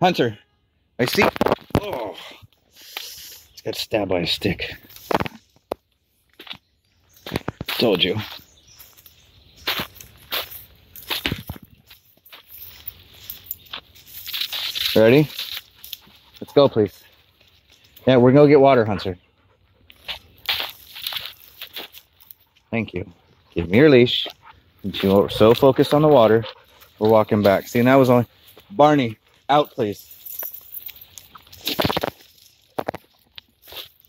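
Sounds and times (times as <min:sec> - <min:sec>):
leaves crunching underfoot: 0:07.2 - 0:16.4, 0:20.0 - 0:22.5, 0:29.8 - 0:34.0.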